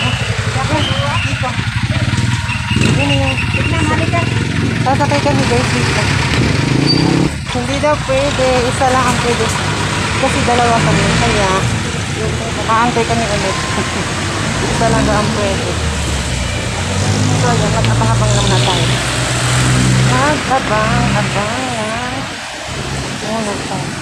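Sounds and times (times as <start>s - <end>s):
people talking: 0.0s - 6.3s, 7.5s - 15.9s, 17.0s - 19.2s, 20.1s - 22.4s, 23.2s - 24.0s
street traffic: 0.0s - 24.0s
vehicle engine idling: 0.0s - 24.0s.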